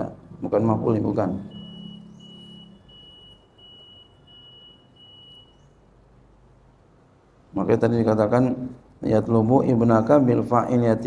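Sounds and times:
high electronic beeps: 0:01.3 - 0:05.8.

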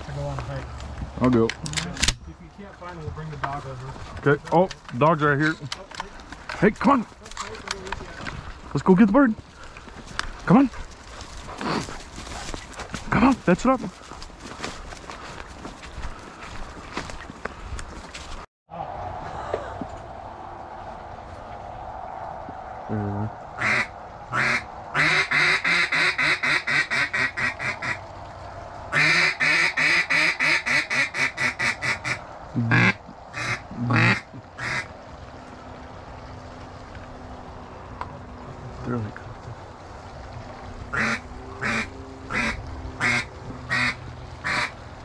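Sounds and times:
footsteps rustling through dry leaves: 0:07.1 - 0:18.5
duck call quacking: 0:23.6 - 0:28.0, 0:28.9 - 0:34.9, 0:40.9 - 0:44.7.

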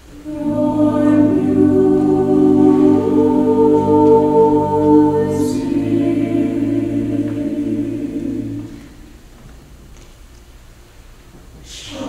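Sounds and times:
chamber choir singing chords: 0:00.0 - 0:09.4.

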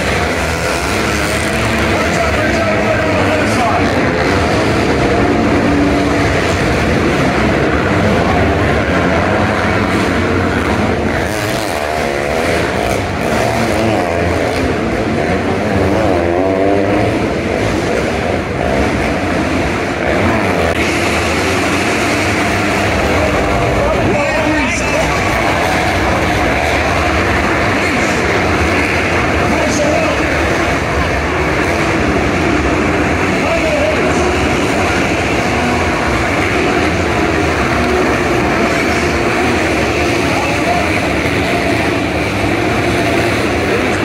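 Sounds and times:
dirt bike engines revving: 0:00.0 - 0:44.0
loudspeaker voice talking: 0:00.3 - 0:05.7, 0:22.8 - 0:31.0, 0:33.1 - 0:36.0, 0:39.2 - 0:42.0.

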